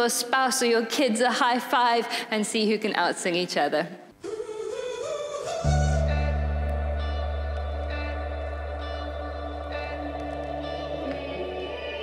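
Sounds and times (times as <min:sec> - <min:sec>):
held low bass note: 0:05.6 - 0:09.7
keyboard chords: 0:05.6 - 0:12.0.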